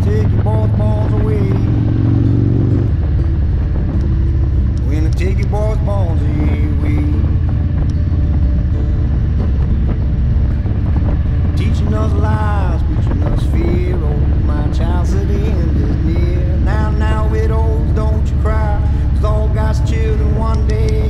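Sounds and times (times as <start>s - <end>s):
motorcycle engine rumble: 0.0s - 21.0s
music with singing voice: 0.0s - 21.0s
wind at highway speed: 0.0s - 21.0s.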